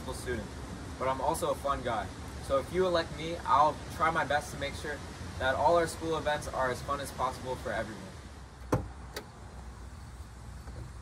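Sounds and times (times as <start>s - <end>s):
car trunk latch click: 8.6s - 9.3s.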